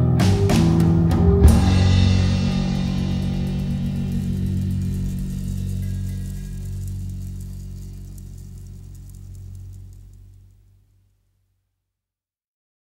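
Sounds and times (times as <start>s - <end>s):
guitar and bass chord ringing: 0.0s - 10.5s.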